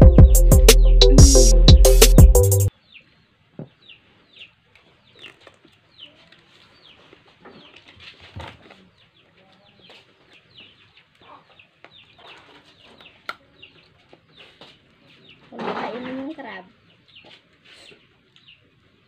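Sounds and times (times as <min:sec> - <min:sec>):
chickens chirping: 0:02.7 - 0:19.0.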